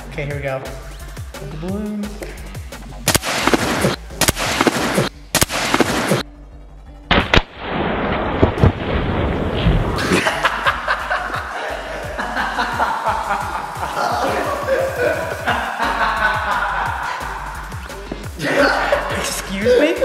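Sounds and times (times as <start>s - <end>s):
background music: 0.0s - 20.0s
water balloon bursting: 3.1s - 6.2s.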